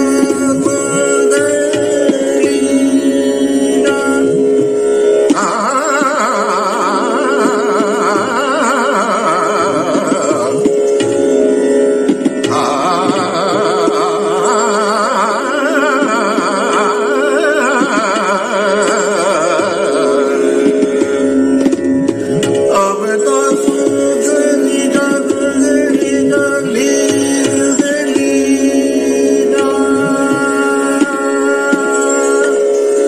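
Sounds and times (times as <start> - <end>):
man singing classical vocal: 0.0 - 11.0, 12.5 - 21.2, 22.7 - 33.0
steady drone of held tones: 0.0 - 33.0
tabla strokes: 0.0 - 33.0.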